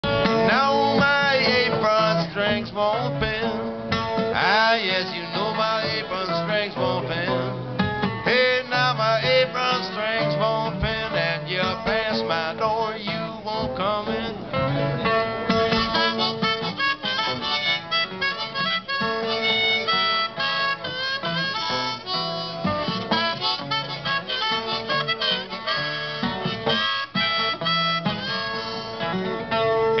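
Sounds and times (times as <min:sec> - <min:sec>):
acoustic guitar strumming rhythm: 0:00.0 - 0:30.0
harmonica with bent notes: 0:00.0 - 0:30.0.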